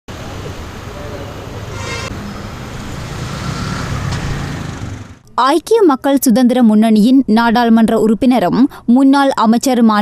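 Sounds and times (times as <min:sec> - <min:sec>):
road traffic: 0:00.1 - 0:05.4
short higher-pitched sound: 0:01.7 - 0:02.6.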